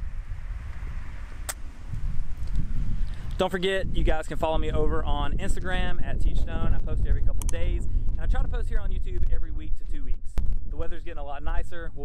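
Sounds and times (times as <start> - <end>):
wind buffeting microphone: 0.0 - 12.0
sharp click: 1.4 - 1.6, 7.4 - 7.6.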